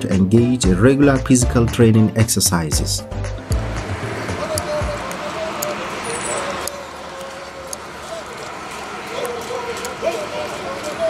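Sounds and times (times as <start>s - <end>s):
footsteps jogging on pavement: 3.3s - 11.0s
murmur of voices: 4.0s - 11.0s.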